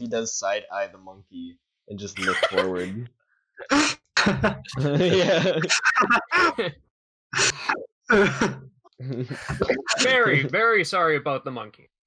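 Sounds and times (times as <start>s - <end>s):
voices: 0.0s - 6.8s, 7.4s - 11.8s
people laughing: 2.0s - 3.0s, 4.2s - 6.7s, 7.4s - 11.0s.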